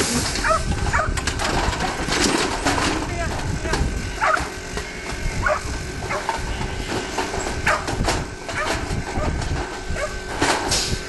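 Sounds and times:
metal crate and gates clanking: 0:00.0 - 0:11.0.

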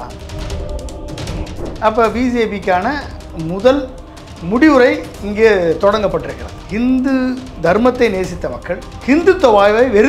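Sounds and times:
man speaking: 0:01.8 - 0:10.0.

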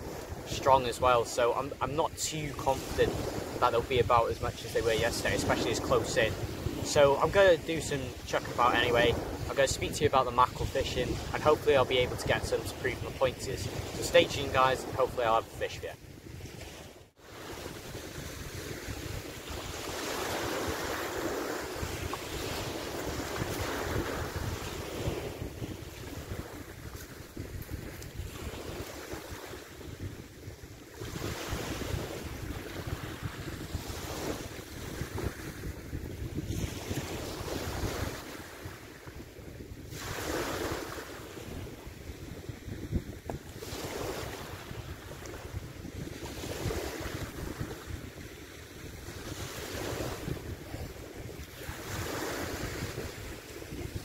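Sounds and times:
waves washing on pebble beach: 0:00.0 - 0:15.9, 0:16.6 - 0:30.1, 0:30.7 - 0:42.6, 0:43.5 - 0:54.0
wind buffeting microphone: 0:00.0 - 0:54.0.

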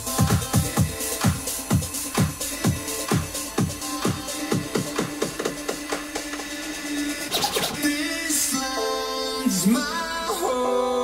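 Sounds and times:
electronic dance music: 0:00.0 - 0:11.0
scratch-like sweep: 0:06.9 - 0:08.0.

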